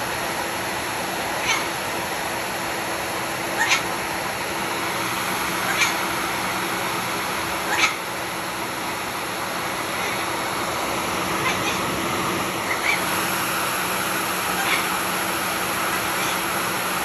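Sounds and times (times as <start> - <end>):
background hiss and hum: 0.0 - 17.0
cockatoo high calls: 1.4 - 1.9, 3.4 - 4.0, 5.3 - 6.7, 7.6 - 8.2, 9.7 - 13.6, 14.2 - 16.8.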